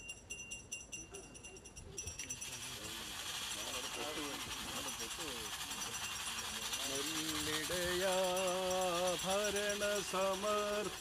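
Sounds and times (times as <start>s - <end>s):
small bells jingling: 0.0s - 11.0s.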